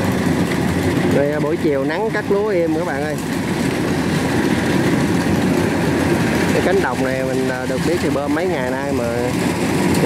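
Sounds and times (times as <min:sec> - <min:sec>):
combine harvester running: 0:00.0 - 0:10.0.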